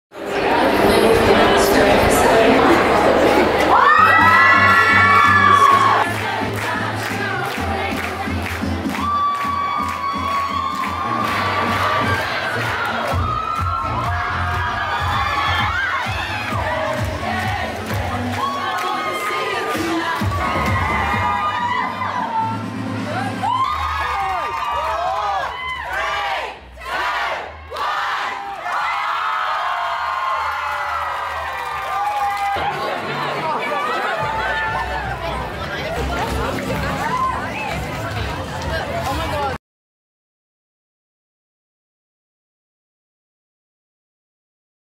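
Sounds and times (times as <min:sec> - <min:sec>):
crowd cheering and screaming: 0:00.2 - 0:06.4, 0:08.6 - 0:38.8.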